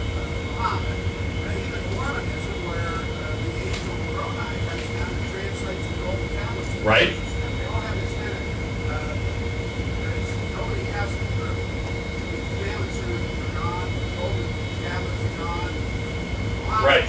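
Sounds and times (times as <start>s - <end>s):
low rumble and hum: 0.0s - 17.0s
man asking a question: 0.4s - 9.3s, 16.6s - 17.0s.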